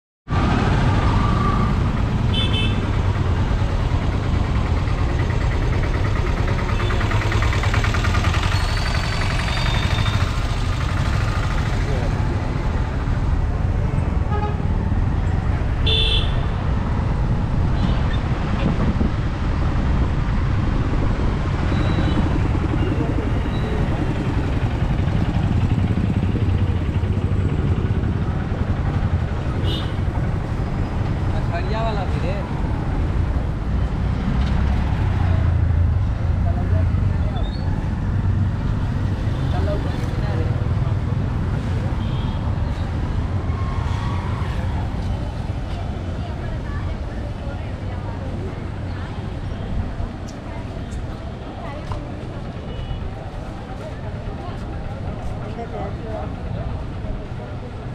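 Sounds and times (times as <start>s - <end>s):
busy street traffic rumble: 0.3s - 57.9s
engine fast even rattle: 4.2s - 12.0s
faint voices: 44.2s - 57.9s.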